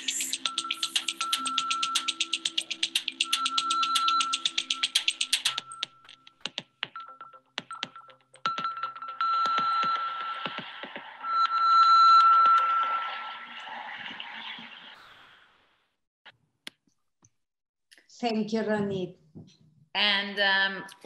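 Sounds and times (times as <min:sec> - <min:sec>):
scattered clicks: 0:00.0 - 0:06.7
rapid pulsing click beat: 0:00.0 - 0:10.9.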